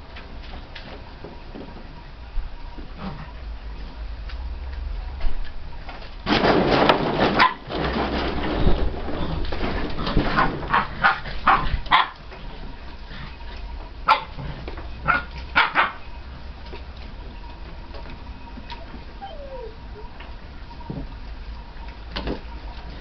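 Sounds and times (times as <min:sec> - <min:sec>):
puppies yapping: 0:10.4 - 0:12.2, 0:15.0 - 0:16.1, 0:18.5 - 0:20.5.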